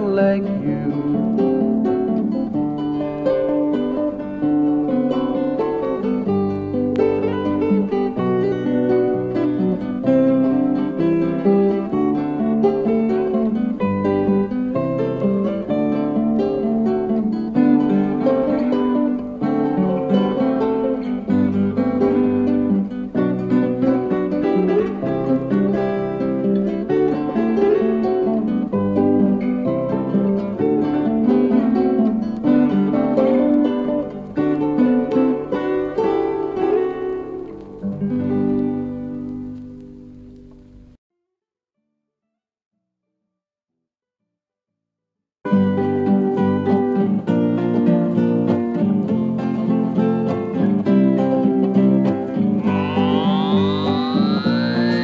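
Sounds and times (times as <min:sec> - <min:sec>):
acoustic guitars picking and strumming: 0:00.0 - 0:40.9, 0:45.5 - 0:55.0
bass notes: 0:52.5 - 0:55.0.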